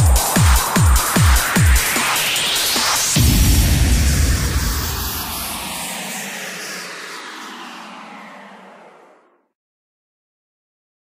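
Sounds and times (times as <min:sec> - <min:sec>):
dance track bass: 0:00.0 - 0:08.6
filtered noise whoosh: 0:03.2 - 0:09.2.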